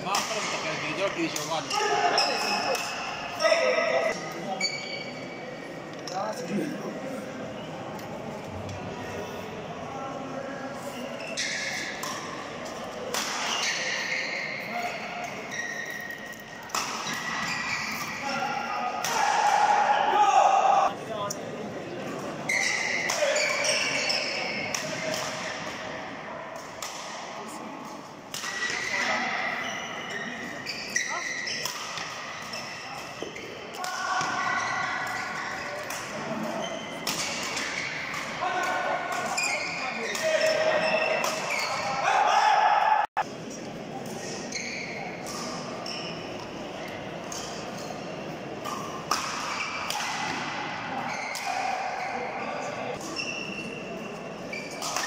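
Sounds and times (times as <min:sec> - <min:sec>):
voices echoing: 0:00.0 - 0:55.0.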